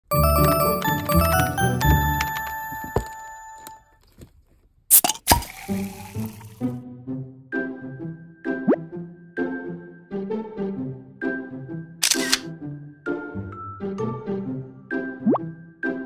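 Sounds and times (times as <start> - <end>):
cheerful tune with steady beat: 0.0 - 3.8, 6.8 - 12.0, 12.6 - 16.0
chiming jingle: 0.0 - 3.8
sharp double click: 12.0 - 12.5.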